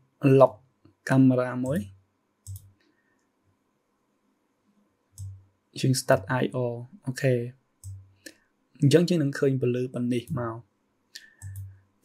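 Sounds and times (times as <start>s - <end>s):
computer mouse clicks: 2.4s - 3.3s, 5.2s - 5.4s, 7.8s - 8.4s, 11.2s - 11.8s.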